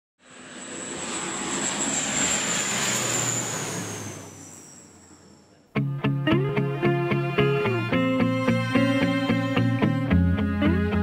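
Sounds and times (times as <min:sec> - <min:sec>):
plane engine whine passing: 0:00.2 - 0:11.0.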